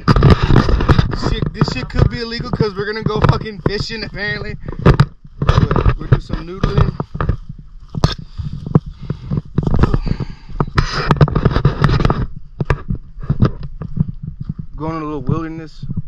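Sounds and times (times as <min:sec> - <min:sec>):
person speaking: 0:00.0 - 0:07.4
camera handling crackles: 0:00.0 - 0:14.2
brush rustling: 0:00.0 - 0:14.7
wind rumbling on microphone: 0:00.0 - 0:16.0.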